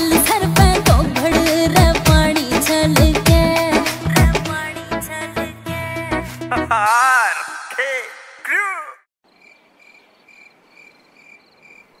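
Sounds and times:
person singing: 0:00.0 - 0:08.7.

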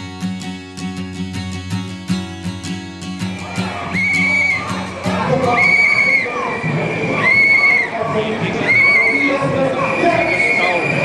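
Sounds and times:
crowd shouting: 0:03.2 - 0:11.0
shrill whistle blasts: 0:03.9 - 0:04.8, 0:05.5 - 0:08.0, 0:08.6 - 0:11.0.

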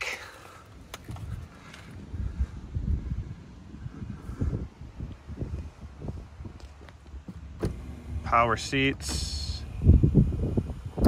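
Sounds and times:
wind buffeting microphone: 0:00.7 - 0:11.0.

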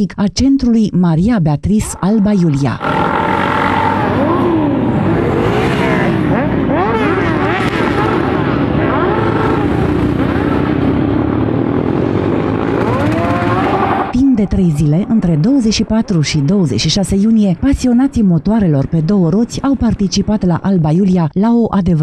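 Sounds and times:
motorcycles revving past: 0:02.8 - 0:14.1.

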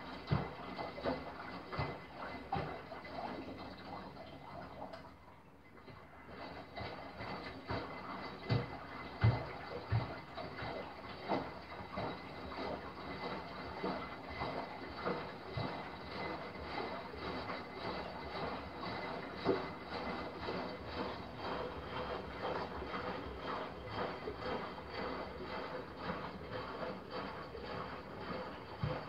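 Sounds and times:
faint machine hum: 0:00.0 - 0:29.0
water sloshing in washing machine: 0:00.0 - 0:29.0.

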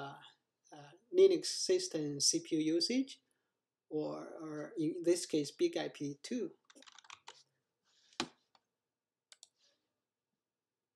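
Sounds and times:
computer mouse clicks: 0:06.7 - 0:07.4, 0:09.3 - 0:09.6.

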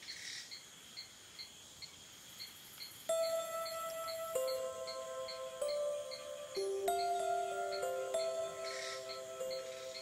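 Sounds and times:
cricket-like chirping: 0:00.0 - 0:10.0
bell-like chime: 0:03.1 - 0:10.0
soft shimmering swell: 0:03.1 - 0:10.0
thin high whine: 0:03.1 - 0:10.0.

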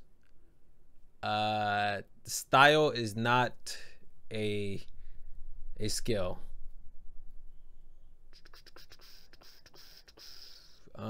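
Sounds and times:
low room hum: 0:00.0 - 0:11.0
scratchy hiss: 0:08.3 - 0:11.0.

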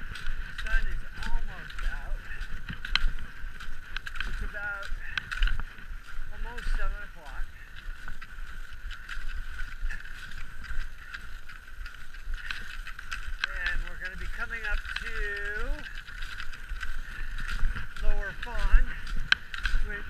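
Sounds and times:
skis scraping on snow: 0:00.0 - 0:20.0
ski poles planting clicks: 0:00.5 - 0:05.7, 0:07.8 - 0:20.0.

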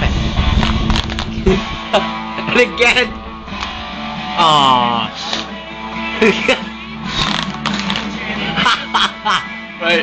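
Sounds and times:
guitar music: 0:00.3 - 0:10.0
voices and laughter: 0:06.1 - 0:06.9, 0:08.2 - 0:10.0.

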